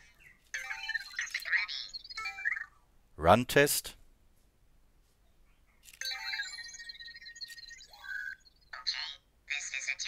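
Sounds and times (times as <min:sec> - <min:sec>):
robot electronic chirps and beeps: 0:00.6 - 0:02.8, 0:06.0 - 0:09.2.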